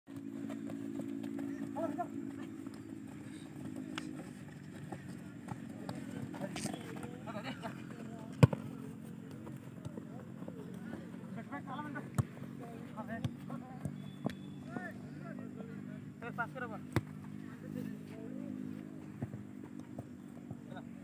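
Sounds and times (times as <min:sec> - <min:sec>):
steady low hum: 0:00.1 - 0:21.0.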